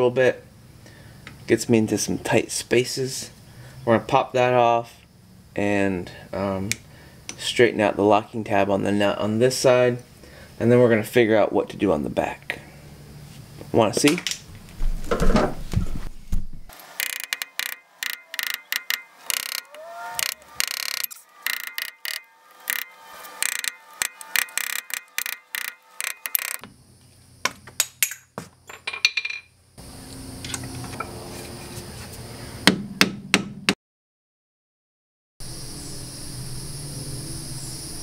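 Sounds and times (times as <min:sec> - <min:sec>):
screwdriver tapping on metal hub: 0:17.0 - 0:26.6.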